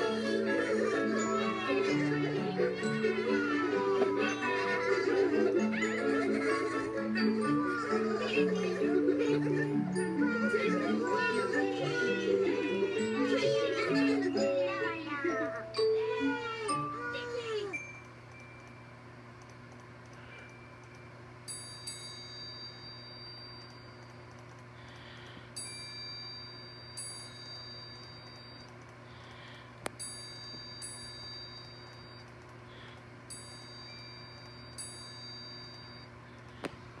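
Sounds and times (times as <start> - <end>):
soft chime tones: 20.4 - 24.2, 25.6 - 28.7, 30.0 - 32.3, 33.3 - 36.2.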